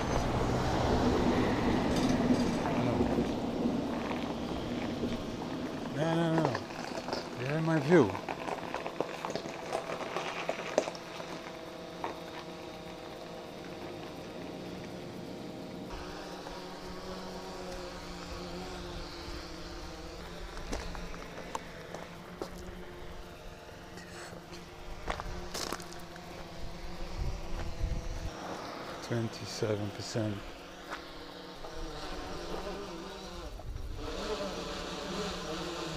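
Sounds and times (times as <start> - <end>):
drone propellers humming: 0.0 - 35.9.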